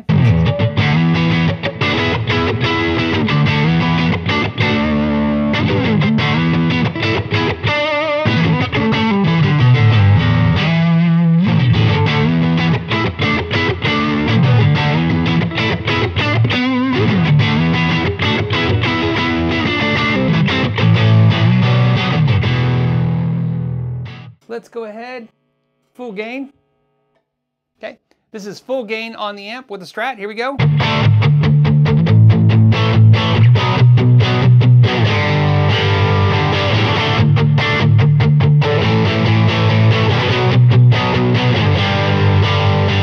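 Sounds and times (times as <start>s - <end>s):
electric guitar lead with reverb: 0.0s - 24.4s, 30.6s - 43.0s.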